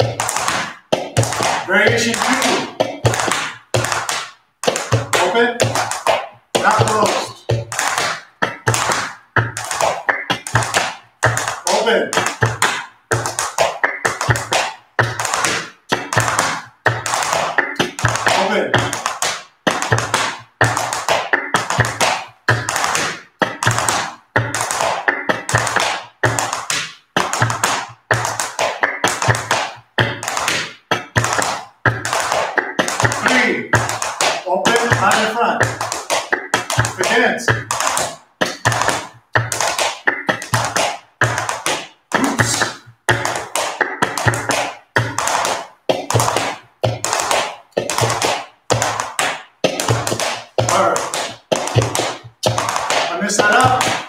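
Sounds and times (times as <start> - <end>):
dance shoes tapping wooden floor: 0.0 - 54.0.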